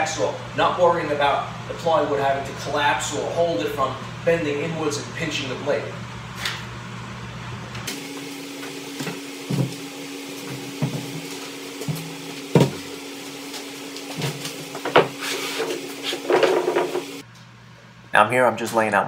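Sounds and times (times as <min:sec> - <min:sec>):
plywood knocks and thuds: 0:11.8 - 0:12.9.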